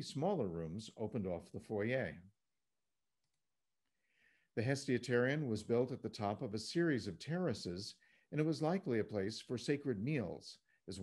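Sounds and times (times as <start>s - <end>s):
man narrating: 0.0s - 2.3s, 4.6s - 11.0s.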